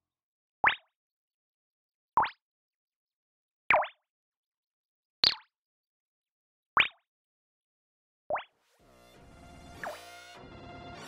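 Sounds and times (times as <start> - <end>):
synth water-drip blips: 0.6 - 1.0, 2.2 - 2.4, 3.7 - 4.1, 5.2 - 5.5, 6.8 - 7.1, 8.3 - 8.5, 9.8 - 10.0
synth drone: 8.8 - 11.0.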